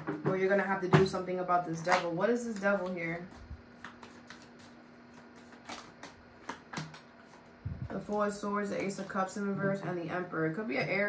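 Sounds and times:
cards being shuffled: 1.8 - 8.2.

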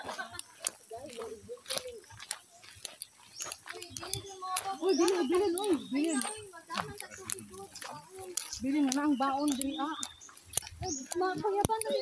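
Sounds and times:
faint voices: 0.0 - 12.0
footsteps on dirt and grass: 0.0 - 12.0.

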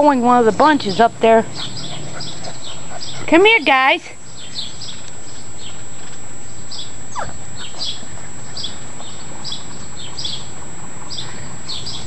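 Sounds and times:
puppy yelp: 7.1 - 7.9.

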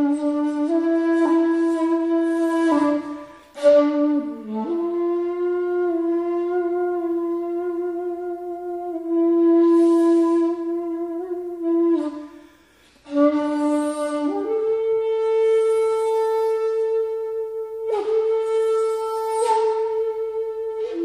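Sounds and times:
bamboo flute playing: 0.0 - 21.0.

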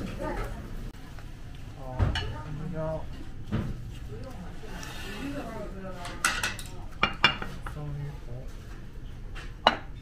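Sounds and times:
plates and cutlery clinking: 6.0 - 7.9.

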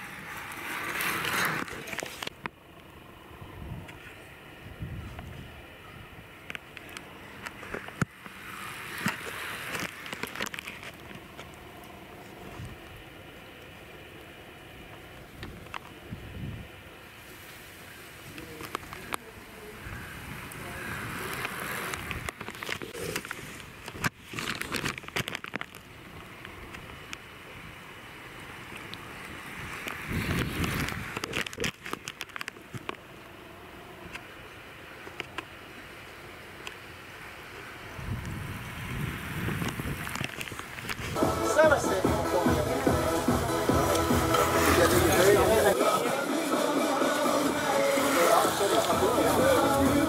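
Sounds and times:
wind gusting over microphone: 3.3 - 6.3, 15.4 - 16.8, 29.4 - 31.8, 37.9 - 41.4
car passing by: 19.6 - 22.3, 41.2 - 50.0.

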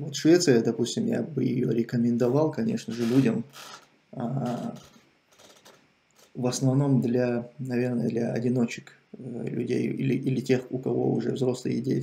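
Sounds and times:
man speaking: 0.0 - 3.5, 4.2 - 4.9, 6.4 - 12.0
faint small sounds: 2.1 - 11.0.

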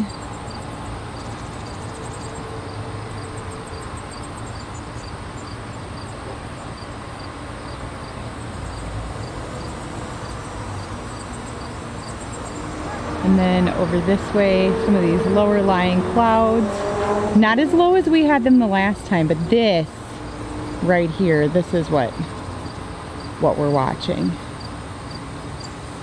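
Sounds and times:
insects chirping: 0.0 - 16.9, 18.8 - 26.0
low steady rumble: 0.0 - 24.5.

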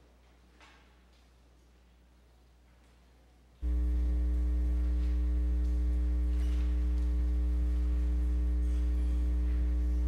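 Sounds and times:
electrical mains hum: 0.1 - 10.0.

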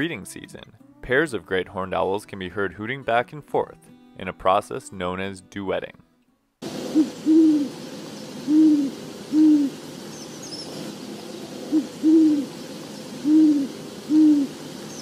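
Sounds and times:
owl hooting: 6.7 - 15.0.

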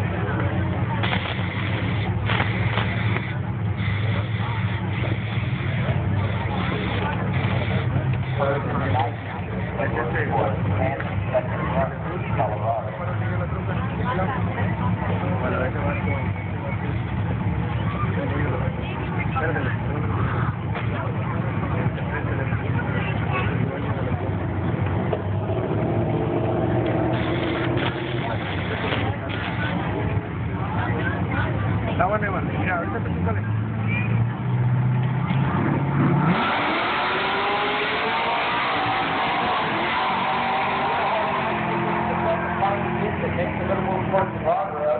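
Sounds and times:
truck accelerating at full throttle: 0.0 - 44.9.

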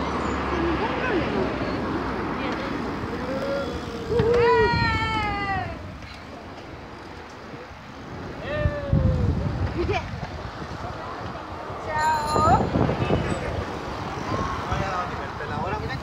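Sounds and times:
bicycle road noise: 0.0 - 16.0
wind noise on microphone: 2.9 - 6.1, 6.7 - 16.0.

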